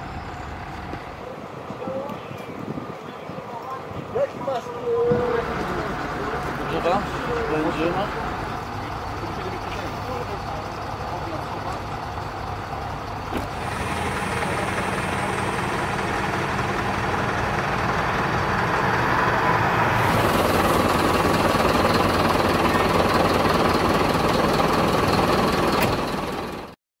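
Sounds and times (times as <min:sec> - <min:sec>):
engine running steadily: 0:00.0 - 0:26.8
background voices: 0:03.0 - 0:12.8, 0:13.4 - 0:25.8.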